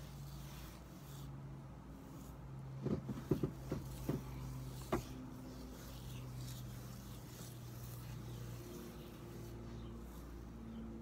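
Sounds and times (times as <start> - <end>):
comb through wet hair: 0.0 - 11.0
steady low hum: 0.0 - 11.0.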